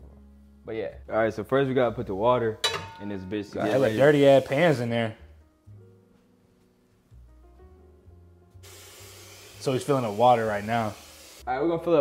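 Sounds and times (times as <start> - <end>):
tap water running into saucepan: 8.6 - 11.4.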